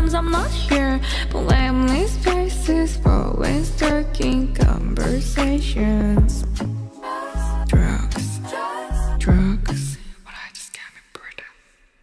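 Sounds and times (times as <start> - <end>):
soft whispering voice: 9.3 - 11.7.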